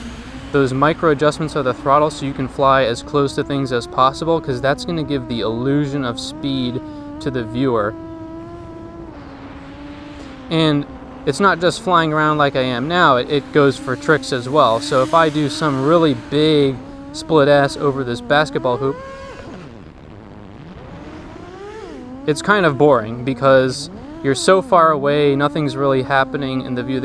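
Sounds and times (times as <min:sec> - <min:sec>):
quadcopter motors buzzing whine: 0:00.0 - 0:27.0.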